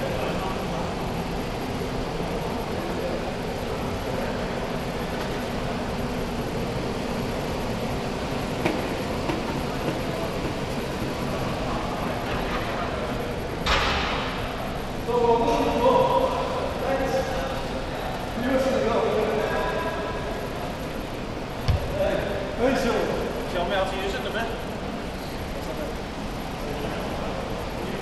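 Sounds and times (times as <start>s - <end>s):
exercise bikes whirring: 0.0s - 28.0s.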